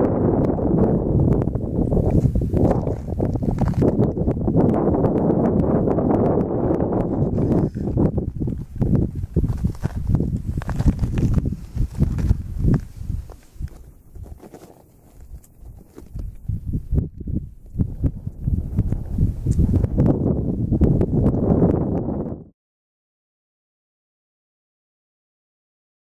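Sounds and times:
wind buffeting microphone: 0.0s - 22.5s.

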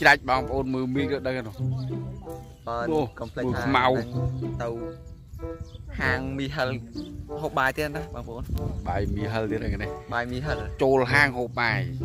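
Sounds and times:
man talking: 0.0s - 5.1s, 5.9s - 12.0s
background music: 0.0s - 12.0s.

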